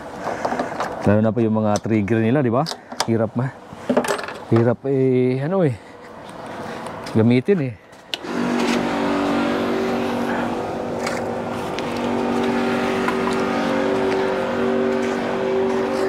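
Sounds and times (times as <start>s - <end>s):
electric pump humming: 8.1s - 16.0s.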